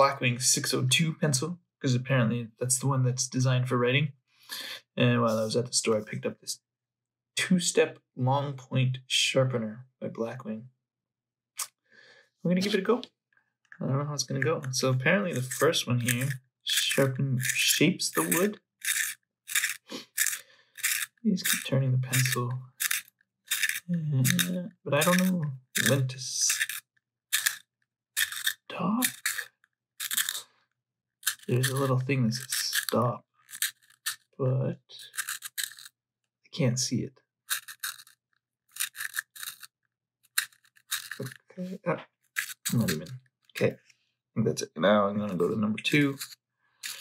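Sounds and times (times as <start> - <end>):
sharpener blade scraping wood: 18.2 - 21.6, 22.2 - 26.8, 27.4 - 27.6, 28.2 - 30.4, 31.2 - 34.2, 35.0 - 35.9, 37.5 - 39.7, 40.3 - 41.4, 42.4 - 43.0.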